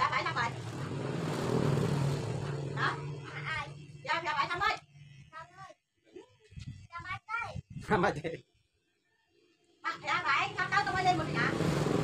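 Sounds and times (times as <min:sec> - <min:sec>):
people talking: 0:00.0 - 0:00.6, 0:02.7 - 0:08.4, 0:09.9 - 0:11.6
rushing noise: 0:00.4 - 0:03.8.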